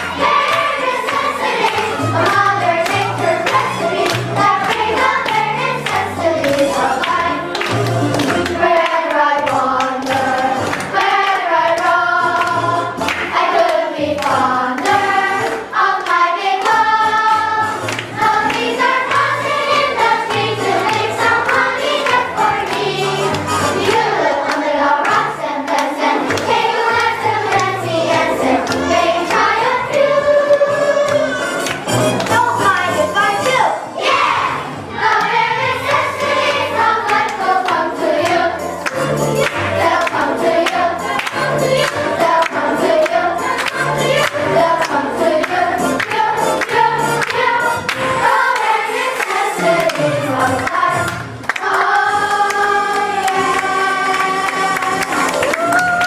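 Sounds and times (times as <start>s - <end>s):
handclaps: 0.0s - 16.8s, 17.8s - 30.0s, 31.0s - 32.7s, 37.0s - 56.0s
backing track music: 0.0s - 56.0s
children's chorus singing: 0.0s - 56.0s.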